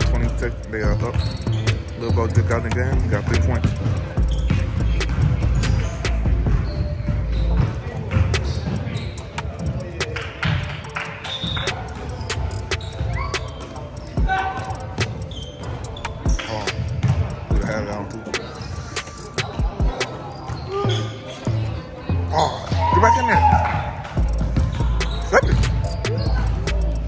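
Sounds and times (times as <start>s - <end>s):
spectators' voices: 0.0s - 6.6s, 8.2s - 22.8s, 24.0s - 27.0s
sneakers squeaking: 0.0s - 22.8s, 24.1s - 27.0s
basketball bouncing on wooden floor: 0.9s - 10.7s.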